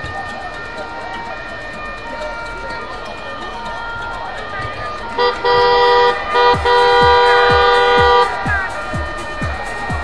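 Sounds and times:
music with thumping beat: 0:00.0 - 0:10.0
vehicle horn blast: 0:04.6 - 0:09.4.

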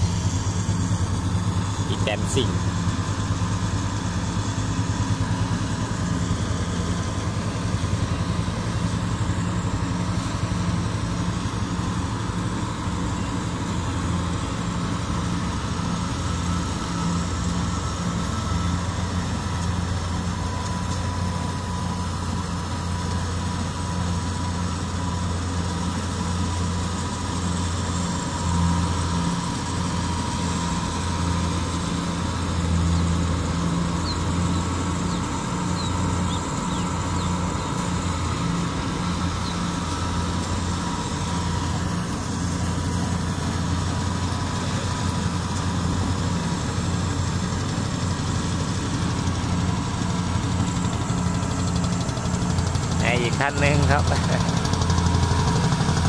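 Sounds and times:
combine harvester engine running: 0:00.0 - 0:56.0.

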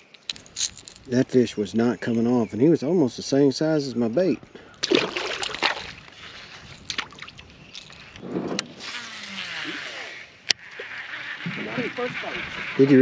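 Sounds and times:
fish splashing into water: 0:04.8 - 0:06.1
water and handling noise: 0:04.8 - 0:13.0.

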